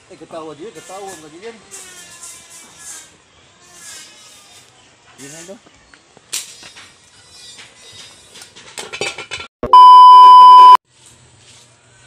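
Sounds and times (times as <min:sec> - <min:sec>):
high-pitched electronic beep: 0:09.6 - 0:10.8.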